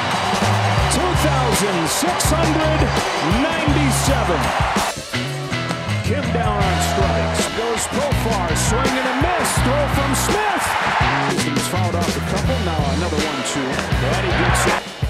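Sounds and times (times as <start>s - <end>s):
music with bass and percussion: 0.0s - 15.0s
broadcast voices: 0.9s - 4.6s, 6.0s - 14.8s.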